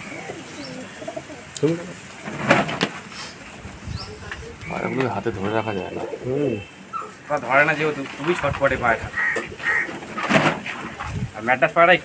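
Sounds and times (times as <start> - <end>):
pigeons cooing: 0.0 - 11.2.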